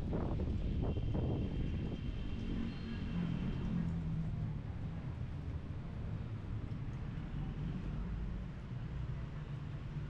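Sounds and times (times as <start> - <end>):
wind buffeting microphone: 0.0 - 2.6.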